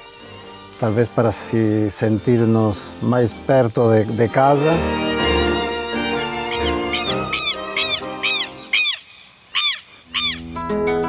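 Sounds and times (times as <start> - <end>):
background music: 0.0 - 8.8, 10.1 - 11.0
lapwing calling: 3.8 - 10.8.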